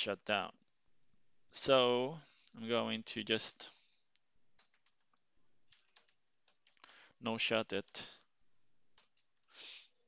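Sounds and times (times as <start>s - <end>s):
computer keyboard typing: 4.6s - 7.1s, 8.9s - 9.6s.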